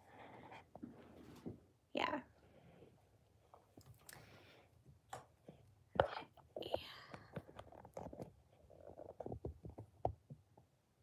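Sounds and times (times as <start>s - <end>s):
person whispering: 6.0s - 7.4s.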